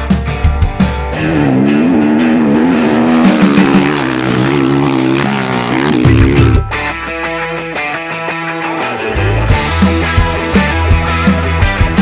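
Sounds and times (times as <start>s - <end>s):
dirt bike engine running: 1.1s - 6.7s.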